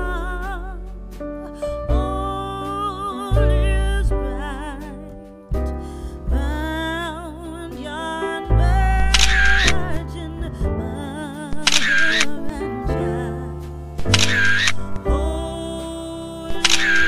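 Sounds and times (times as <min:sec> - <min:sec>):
background music: 0:00.0 - 0:17.0
camera shutter sound effect: 0:11.7 - 0:12.3, 0:14.1 - 0:14.8, 0:16.6 - 0:17.0.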